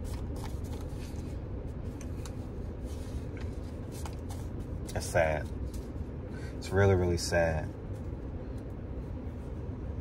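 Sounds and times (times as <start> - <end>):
faint clicks and rustles: 0.0 - 6.2.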